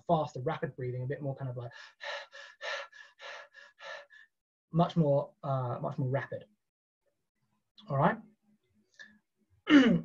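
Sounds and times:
man breathing rapidly: 1.7 - 4.4.

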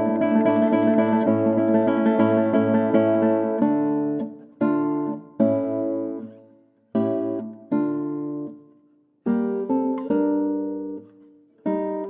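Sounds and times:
acoustic guitar strumming chords: 0.0 - 6.4.

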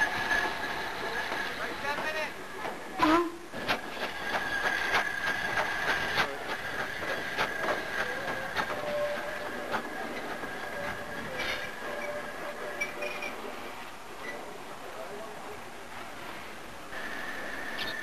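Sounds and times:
train wheels clicking over rail joints: 0.0 - 13.6.

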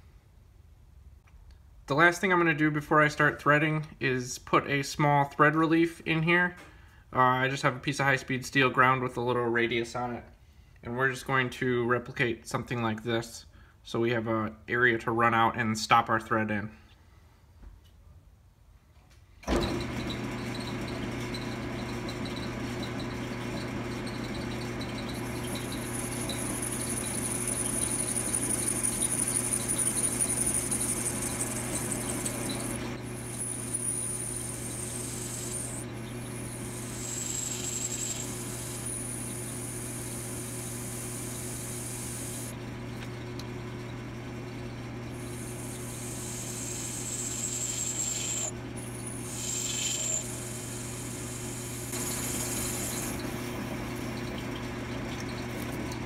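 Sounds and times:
lathe motor hum: 19.5 - 56.0
high-pitched cutting whine: 20.0 - 42.6, 44.4 - 54.2.

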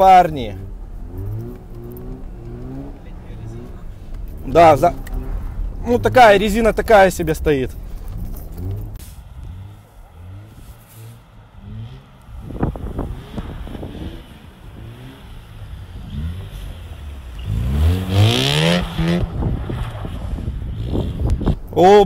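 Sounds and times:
rotary engine revving: 0.5 - 21.5.

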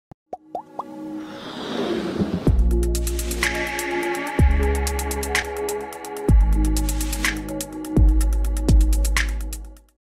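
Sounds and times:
synthesized music: 2.5 - 9.7.

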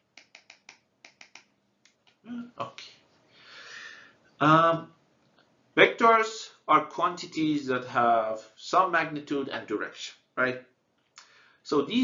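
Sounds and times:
computer clicks: 0.1 - 2.1.

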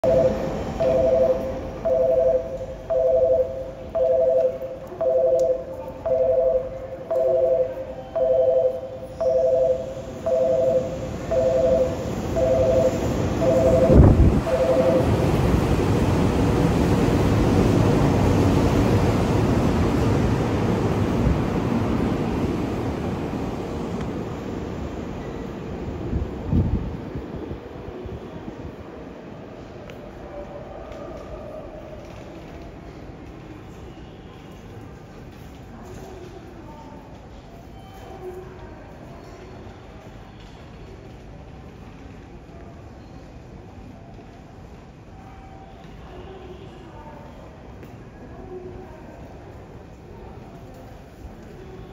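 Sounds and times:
two-tone warning chime beeping: 0.0 - 15.3
electric train rumbling past: 0.0 - 32.0.

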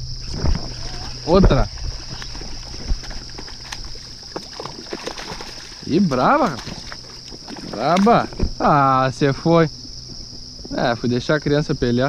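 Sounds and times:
high insect buzz: 0.0 - 12.0
light water splashing: 0.3 - 8.8.

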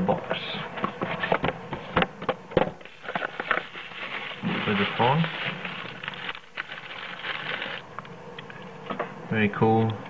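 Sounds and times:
plastic wrap rustling: 2.8 - 7.9.

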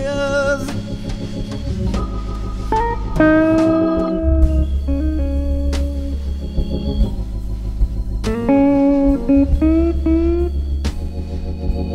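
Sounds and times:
slow blues electric guitar lead: 0.0 - 7.4, 8.1 - 11.8
drums: 0.0 - 11.9
organ: 0.0 - 11.9
sustained bass: 0.0 - 11.9.

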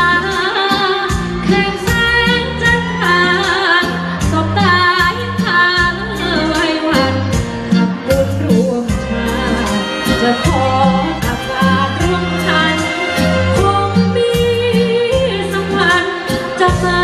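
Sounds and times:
backing music with bass and drums: 0.0 - 17.0
woman singing into a microphone: 0.0 - 17.0.

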